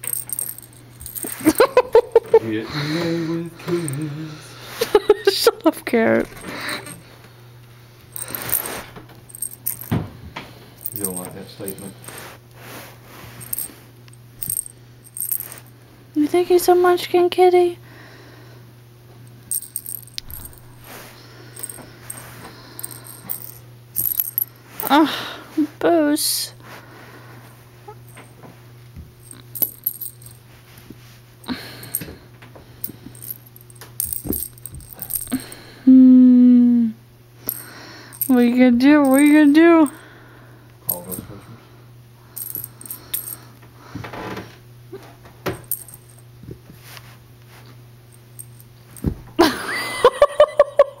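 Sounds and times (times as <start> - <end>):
small bell jingling: 0.0 - 2.1, 8.1 - 10.0, 10.8 - 12.2, 13.4 - 13.8, 14.4 - 15.7, 19.3 - 20.8, 21.5 - 25.1, 29.2 - 30.4, 32.8 - 35.6, 37.5 - 40.0, 42.4 - 43.4, 45.6 - 46.2, 48.1 - 49.1
faint low hum: 0.0 - 51.0.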